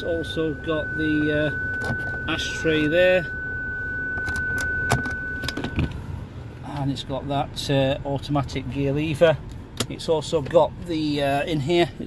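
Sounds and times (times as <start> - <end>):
steady high electronic tone: 0.0 - 6.5.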